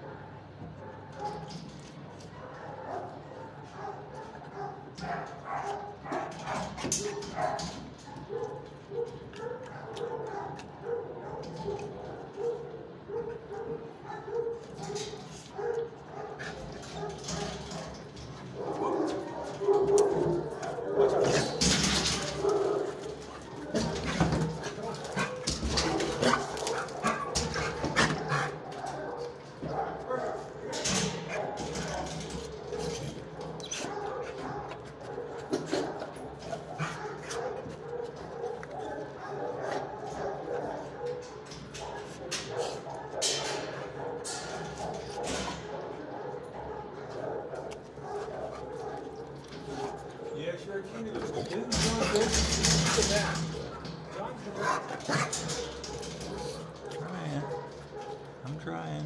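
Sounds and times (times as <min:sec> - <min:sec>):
dogs barking and yipping: 0:00.0 - 0:58.6.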